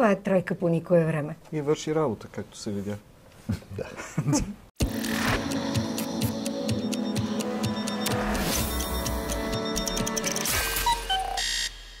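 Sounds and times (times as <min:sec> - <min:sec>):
outro jingle music: 0:04.8 - 0:11.8
short electronic beeps: 0:06.7 - 0:11.8.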